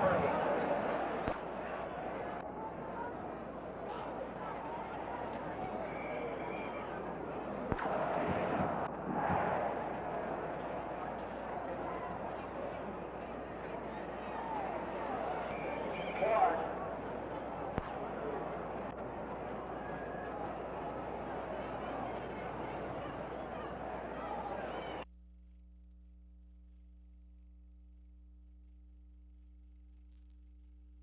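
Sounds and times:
murmur of voices: 0:00.0 - 0:25.0.

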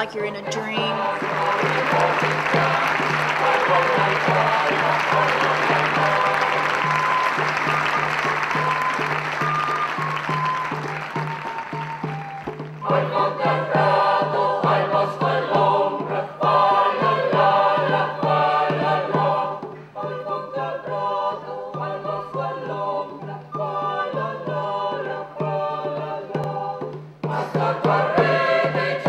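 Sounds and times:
choir singing: 0:00.0 - 0:10.6, 0:12.8 - 0:29.0
background music: 0:00.0 - 0:29.0
audience applause: 0:01.0 - 0:12.8.

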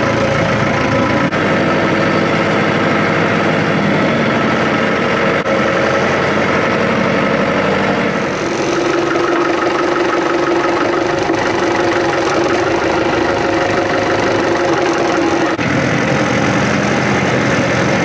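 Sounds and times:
tractor engine running: 0:00.0 - 0:18.0
high steady hum: 0:08.2 - 0:15.8.

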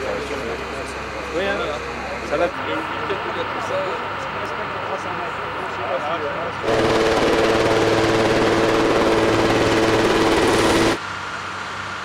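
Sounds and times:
turbine whine: 0:00.0 - 0:12.0
helicopter rotor chop: 0:04.2 - 0:11.0.

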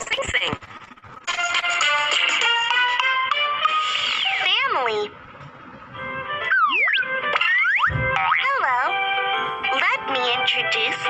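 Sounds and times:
background music: 0:01.2 - 0:05.2, 0:05.8 - 0:11.0.

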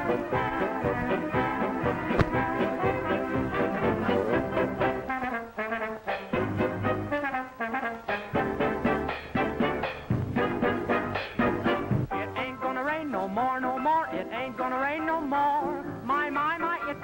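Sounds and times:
lively brass band music: 0:00.0 - 0:12.3
sharp click: 0:02.2 - 0:02.4.

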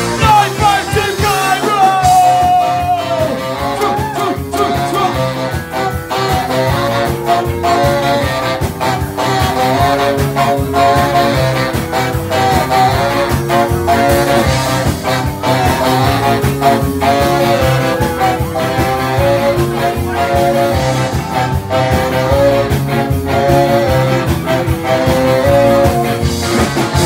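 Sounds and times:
electric guitars: 0:00.0 - 0:27.0
saxophone section melody: 0:00.0 - 0:27.0
steady drum beat: 0:00.0 - 0:27.0.

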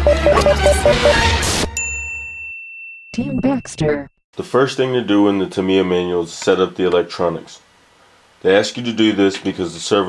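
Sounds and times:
intro music: 0:00.0 - 0:01.7.

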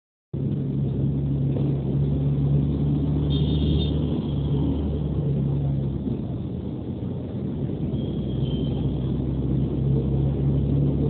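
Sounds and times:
vehicle engine humming: 0:00.4 - 0:11.0.

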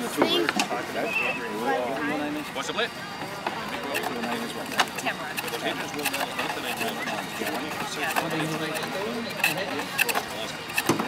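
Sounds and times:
pole lathe wooden knocks: 0:03.4 - 0:11.0.

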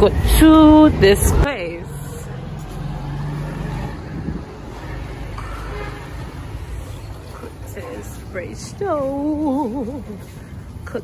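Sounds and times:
low engine hum: 0:00.0 - 0:11.0
street rumble: 0:00.0 - 0:11.0.

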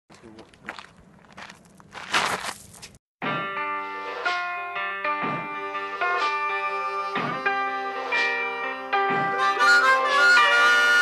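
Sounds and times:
footsteps in grass: 0:00.1 - 0:03.0
scuffs: 0:00.1 - 0:03.0.

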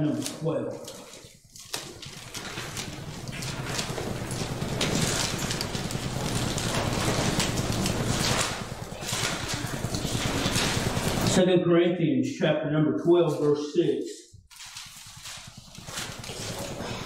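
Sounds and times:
thin pages rustling and turning: 0:00.1 - 0:11.4, 0:14.5 - 0:17.0.

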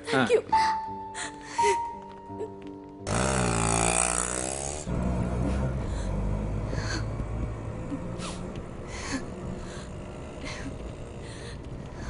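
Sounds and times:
auto-rickshaw engine revving: 0:03.1 - 0:12.0.

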